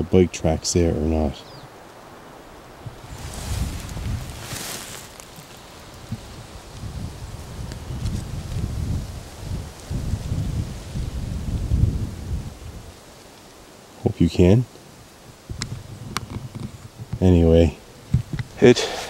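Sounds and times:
vegetation rustling: 0:01.6 - 0:18.8
wind buffeting microphone: 0:02.3 - 0:13.1, 0:14.0 - 0:18.8.

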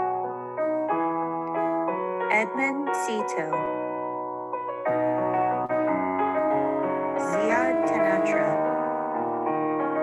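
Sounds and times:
soft piano chords: 0:00.0 - 0:10.0
person speaking: 0:02.3 - 0:03.7, 0:07.2 - 0:08.7.

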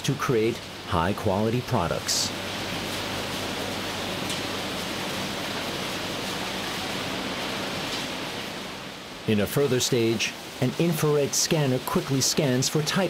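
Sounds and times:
low machinery hum: 0:00.0 - 0:09.3
conveyor belts and sorting machines: 0:00.0 - 0:13.0.

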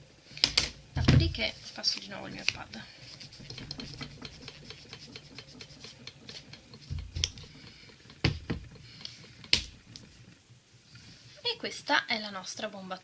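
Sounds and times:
pad rubbing on nails clicks: 0:01.5 - 0:08.2.

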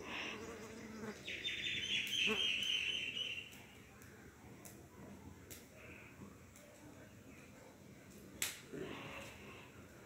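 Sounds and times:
bird trilling call: 0:01.3 - 0:03.4.

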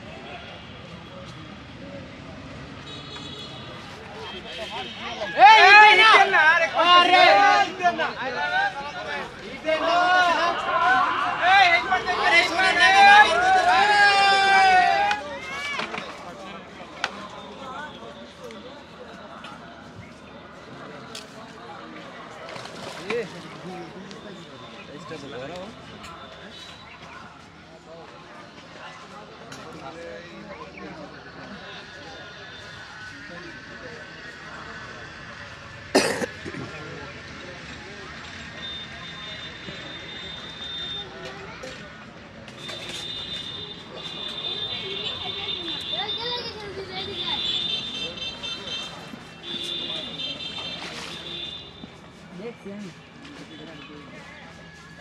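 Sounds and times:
crowd murmur: 0:00.0 - 0:55.0
distant chatter: 0:00.0 - 0:55.0
steady outdoor hum: 0:27.4 - 0:50.6.

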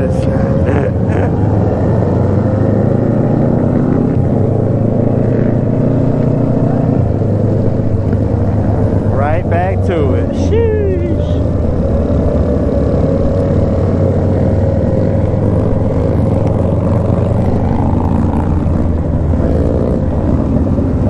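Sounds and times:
motorcycle engines droning: 0:00.0 - 0:21.0.

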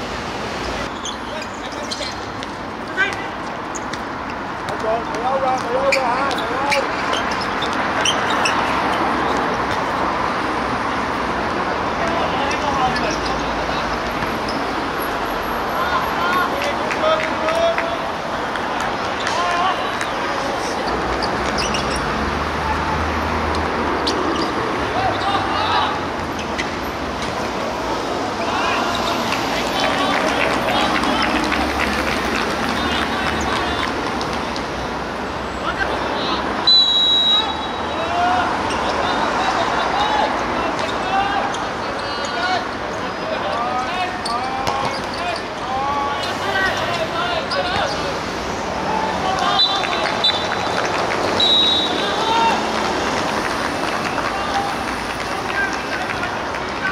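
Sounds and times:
outdoor background noise: 0:00.0 - 0:56.9
distant players calling out: 0:24.0 - 0:26.2, 0:28.3 - 0:31.8, 0:32.6 - 0:34.0, 0:35.6 - 0:52.8
referee's whistle blast: 0:36.6 - 0:37.9, 0:51.4 - 0:52.1.

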